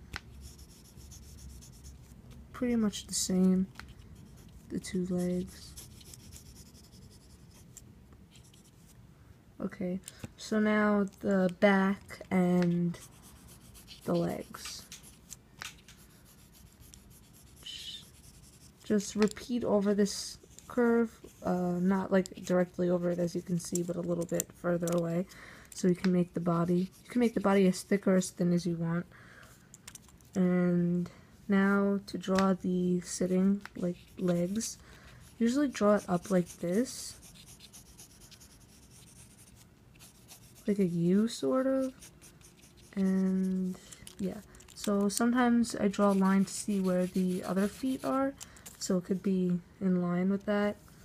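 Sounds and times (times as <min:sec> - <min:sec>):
pencil scratching on paper: 0:00.3 - 0:02.1, 0:04.2 - 0:07.8, 0:12.9 - 0:15.2, 0:16.0 - 0:24.0, 0:26.6 - 0:27.8, 0:33.8 - 0:43.8, 0:44.9 - 0:48.3.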